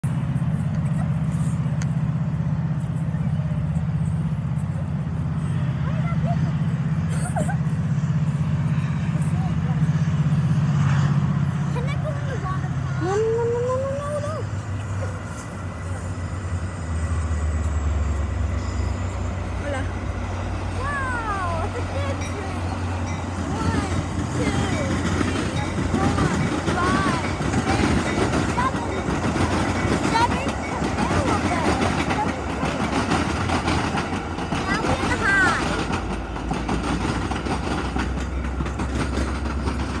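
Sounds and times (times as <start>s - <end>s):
train cars rattling on track: 0.0s - 40.0s
train engine rumble: 0.0s - 40.0s.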